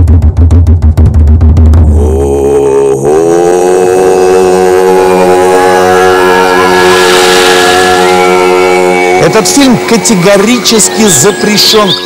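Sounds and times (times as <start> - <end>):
sustained drone of held tones: 1.8 - 12.0.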